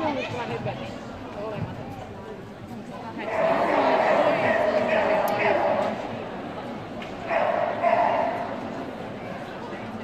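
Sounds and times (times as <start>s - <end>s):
murmur of large hall: 0.0s - 10.0s
dog barking: 7.3s - 8.6s.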